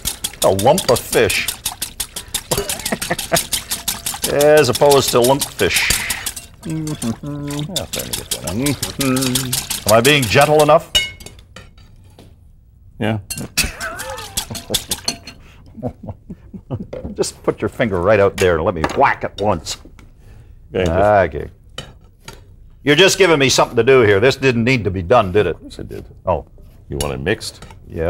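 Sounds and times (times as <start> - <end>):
metal spoon scraping glass bowl: 0.0 - 11.4, 13.3 - 15.4.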